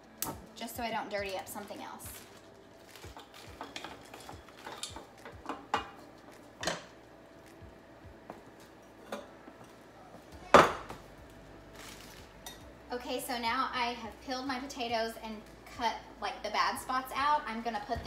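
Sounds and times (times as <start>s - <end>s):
pots and utensils clicking: 3.0s - 6.0s, 6.6s - 6.9s.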